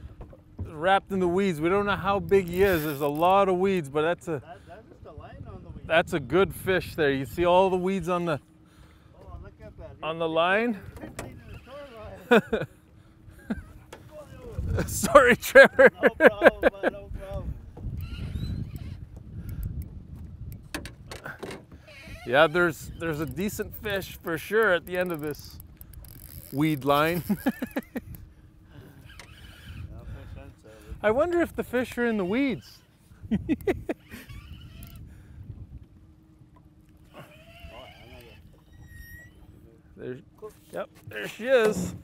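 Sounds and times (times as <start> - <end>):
water and boat noise: 0.0 - 42.0
man laughing: 12.1 - 13.9, 14.5 - 17.3, 27.0 - 28.2, 33.2 - 34.4
fishing reel clicks: 24.4 - 27.4.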